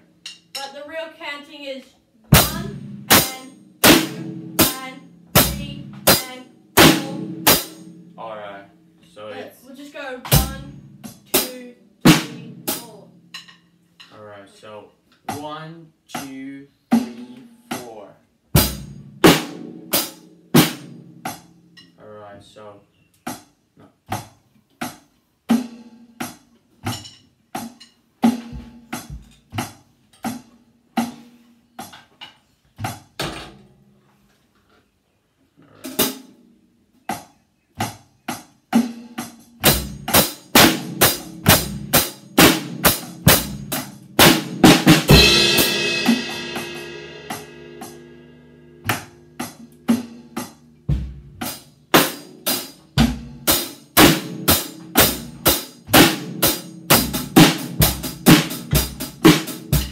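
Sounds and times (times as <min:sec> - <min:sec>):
acoustic drum kit beat: 0:00.0 - 0:22.1, 0:23.1 - 0:33.9, 0:35.6 - 0:59.9
cymbal crash: 0:45.0 - 0:48.8.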